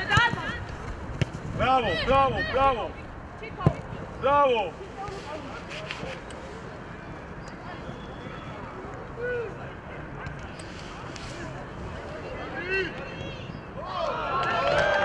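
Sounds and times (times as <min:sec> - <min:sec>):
steady background noise: 0:00.0 - 0:15.0
distant shouts: 0:07.6 - 0:10.1, 0:12.3 - 0:15.0.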